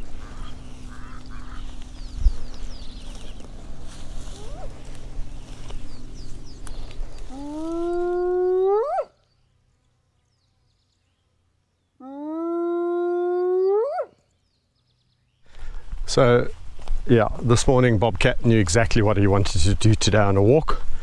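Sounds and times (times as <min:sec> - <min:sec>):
wind rustling grass: 0:00.0 - 0:08.7, 0:15.4 - 0:21.0.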